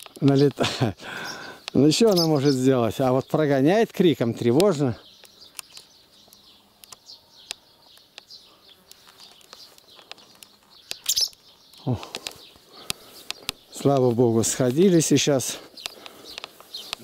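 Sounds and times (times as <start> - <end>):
swallows alarm calls: 0.2 - 17.0.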